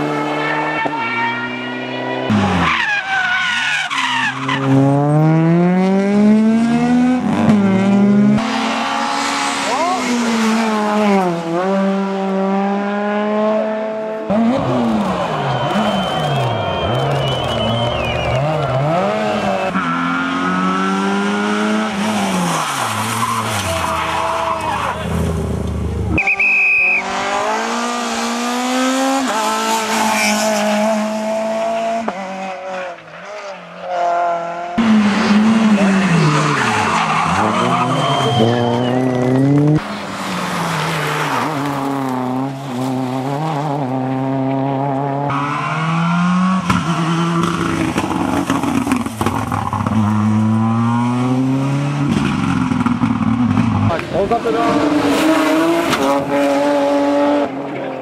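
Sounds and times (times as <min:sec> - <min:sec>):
rally car engines revving past: 0:00.0 - 0:58.0.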